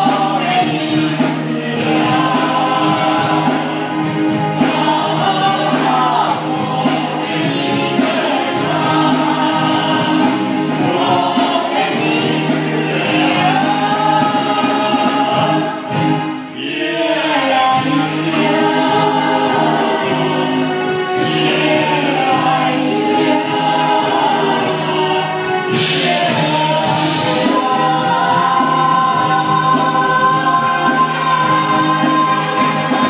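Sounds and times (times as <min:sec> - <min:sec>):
live band playing: 0:00.0 - 0:33.0
voices singing together: 0:00.0 - 0:33.0.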